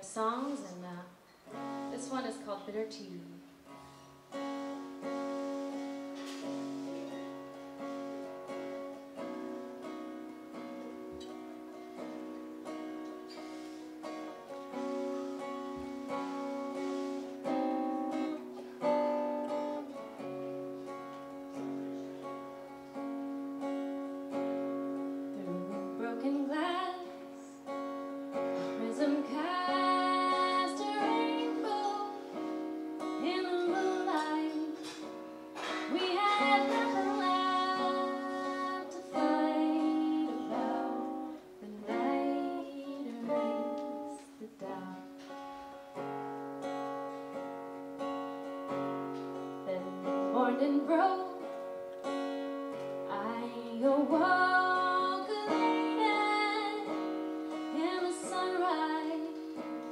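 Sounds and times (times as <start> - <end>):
strummed acoustic guitar: 0.1 - 59.9
woman singing: 25.2 - 27.7, 28.6 - 45.3, 49.4 - 51.8, 53.0 - 59.9.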